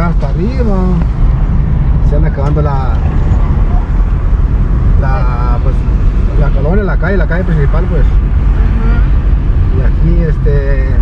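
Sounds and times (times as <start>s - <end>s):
vehicle road and engine rumble: 0.0s - 11.0s.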